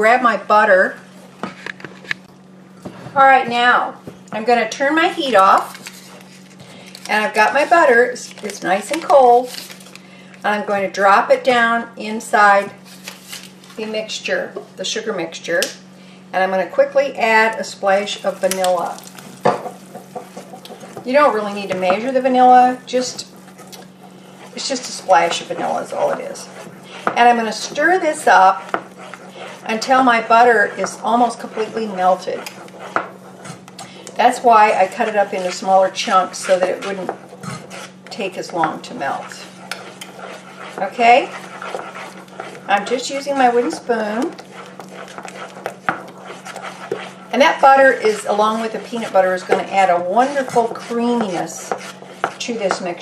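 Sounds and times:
wooden spoon stirring in saucepan: 2.9 - 10.0, 12.3 - 15.0, 16.4 - 53.0.

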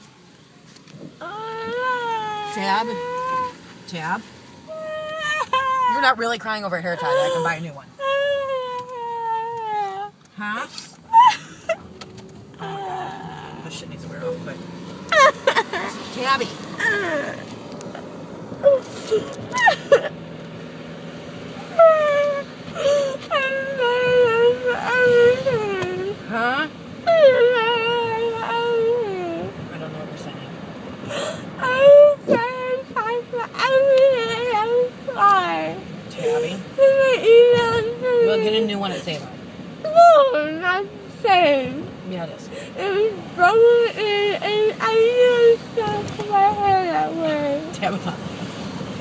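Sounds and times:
car interior hum: 0.0 - 49.0
woman wailing and crying: 4.7 - 6.2, 7.0 - 10.1, 11.1 - 11.8, 12.6 - 13.7, 15.1 - 16.0, 16.8 - 17.4, 18.6 - 20.2, 21.8 - 29.5, 42.6 - 47.6
woman crying in wails: 11.1 - 11.8, 16.8 - 17.4, 18.7 - 20.2, 21.8 - 26.1.

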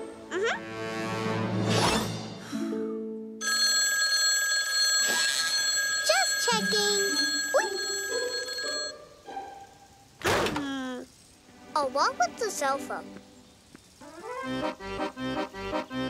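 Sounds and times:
cartoon voice sounds: 0.3 - 0.7
telephone bell ringing: 3.4 - 9.0.

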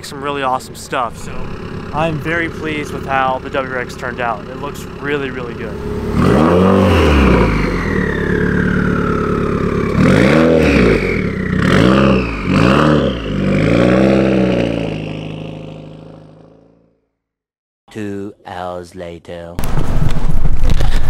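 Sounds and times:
car engine revving: 0.0 - 16.9.

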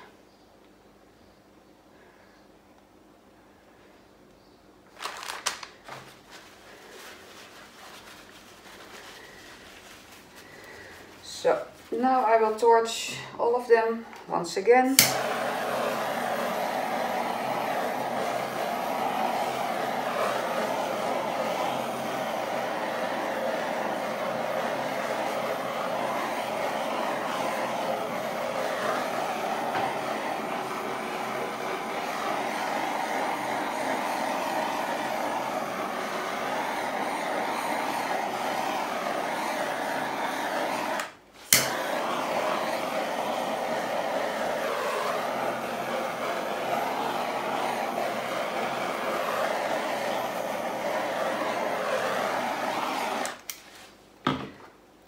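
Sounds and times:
gas torch hissing: 8.9 - 53.7
torch ignition click: 14.9 - 16.2, 40.3 - 44.2, 51.8 - 53.6.

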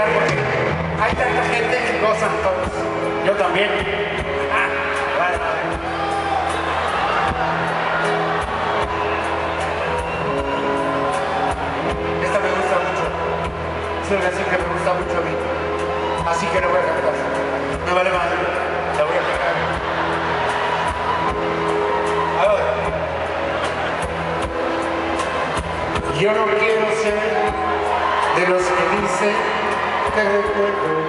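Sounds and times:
live band playing held chords: 0.0 - 31.0.

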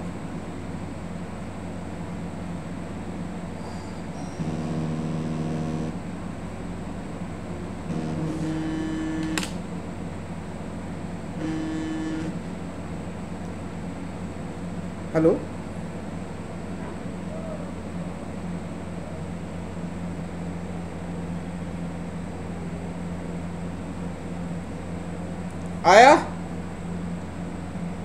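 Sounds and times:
steady background hum: 0.0 - 28.0
mobile phone vibrating: 4.4 - 6.0, 7.9 - 9.6, 11.4 - 12.5.

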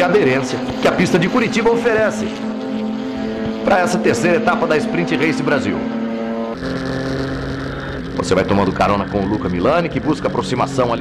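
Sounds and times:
onboard engine drone: 0.0 - 11.0
race car engines running: 0.0 - 11.0.

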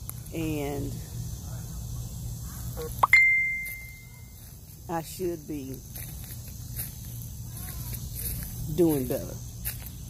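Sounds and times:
bell-like ding: 3.0 - 4.1.

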